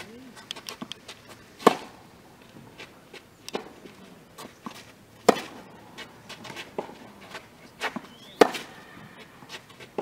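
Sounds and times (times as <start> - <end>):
shoes stepping on clay court: 0.0 - 10.0
racket hitting tennis ball: 1.6 - 2.0, 3.5 - 10.0
tennis ball bouncing: 1.6 - 2.0, 3.1 - 10.0.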